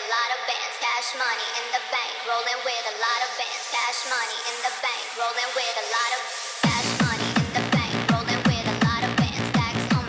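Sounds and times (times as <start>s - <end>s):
filtered techno music: 0.0s - 10.0s.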